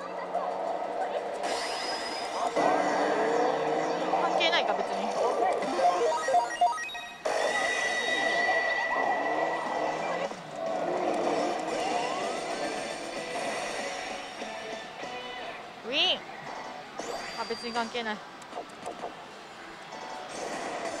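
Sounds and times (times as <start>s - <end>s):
electronic sound effects: 1.4s - 10.4s
slot machine music: 1.4s - 10.4s.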